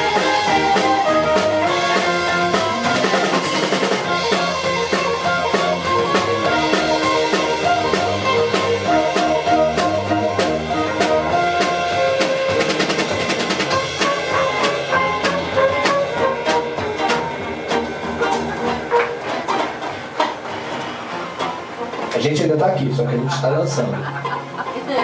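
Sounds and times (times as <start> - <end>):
tenor saxophone: 0.0 - 19.6
trumpet: 0.0 - 22.0
electric guitar: 0.0 - 22.4
drum kit: 0.0 - 25.0
keyboard: 0.0 - 25.0.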